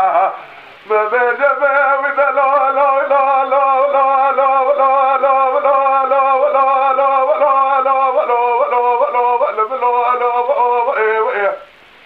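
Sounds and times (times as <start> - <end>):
man singing unaccompanied: 0.0 - 11.8.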